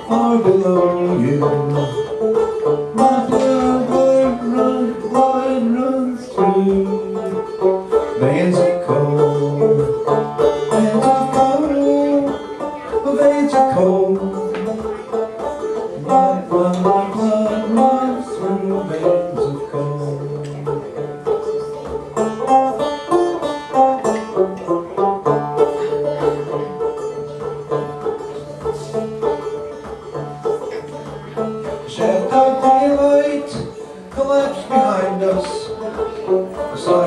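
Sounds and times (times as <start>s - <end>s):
banjo picking: 0.0s - 37.0s.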